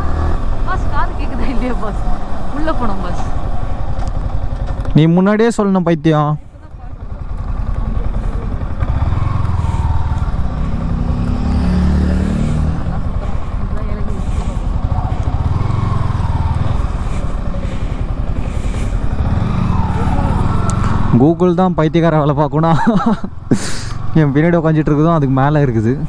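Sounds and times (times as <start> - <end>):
motorcycle engine revving: 0.0 - 5.8, 6.5 - 26.0
wind and road noise: 0.0 - 26.0.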